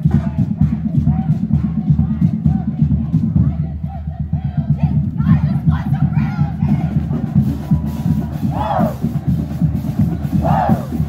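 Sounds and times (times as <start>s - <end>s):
pulsing drum beat: 0.0s - 11.0s
group shouting a chant: 8.2s - 9.0s, 10.4s - 11.0s.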